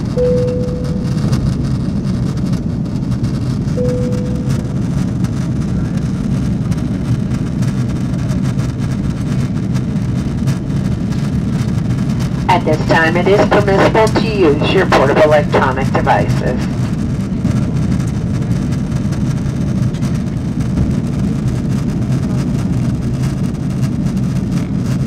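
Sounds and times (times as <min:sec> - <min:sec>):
airliner cabin roar: 0:00.0 - 0:25.0
short chime tones: 0:00.2 - 0:01.2, 0:03.8 - 0:04.8.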